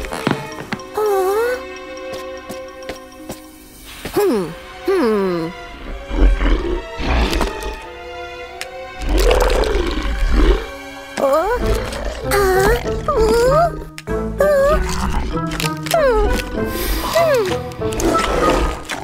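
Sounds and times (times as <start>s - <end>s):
background music: 0.0s - 19.0s.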